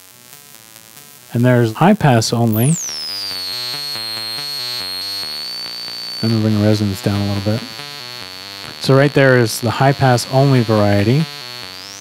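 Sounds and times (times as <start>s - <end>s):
high resonant filter whistle: 2.4s - 12.0s.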